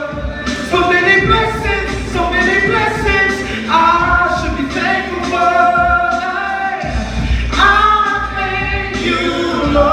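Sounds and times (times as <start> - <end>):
vocal group singing a cappella: 0.0 - 9.9.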